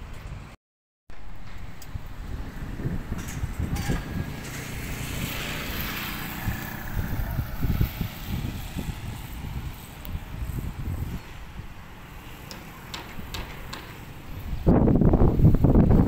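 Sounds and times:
vehicle passing: 0:01.4 - 0:12.5
wind buffeting microphone: 0:01.4 - 0:16.0.

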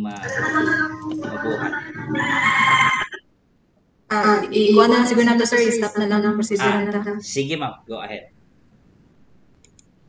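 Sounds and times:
person speaking over video call: 0:04.1 - 0:08.2.

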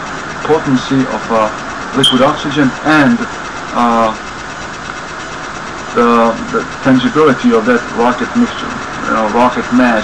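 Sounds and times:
man speaking: 0:00.5 - 0:03.2, 0:03.8 - 0:04.2, 0:06.0 - 0:10.0.

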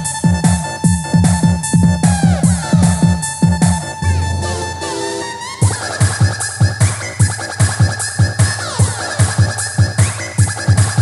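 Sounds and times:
kick drum: 0:00.0 - 0:04.0, 0:05.6 - 0:11.0
high synth line: 0:01.1 - 0:11.0.

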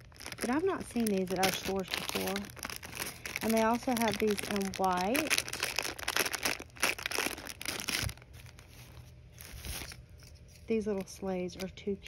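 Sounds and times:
plastic bags crinkling: 0:00.0 - 0:11.7.

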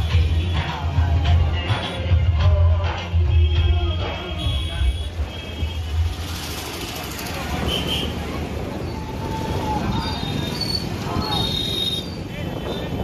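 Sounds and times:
loudspeaker music with heavy bass: 0:00.0 - 0:06.0
motorbikes and traffic: 0:00.0 - 0:13.0
people's voices: 0:06.7 - 0:13.0.

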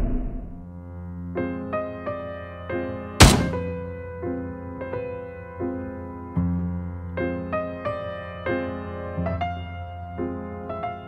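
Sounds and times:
loud heavy thunk: 0:03.2 - 0:03.8.

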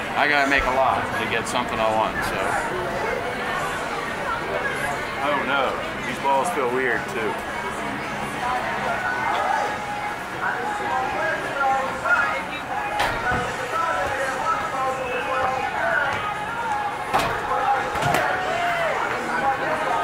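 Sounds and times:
voices chattering: 0:00.0 - 0:20.0.

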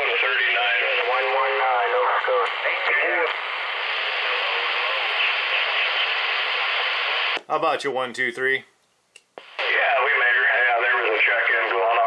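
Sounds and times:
voice over radio speaker: 0:00.0 - 0:07.4, 0:09.4 - 0:12.0
radio static hiss: 0:00.0 - 0:07.6, 0:09.4 - 0:12.0.

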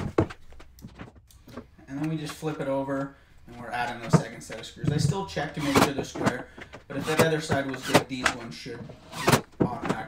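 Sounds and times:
handling clicks and knocks: 0:09.4 - 0:10.0.

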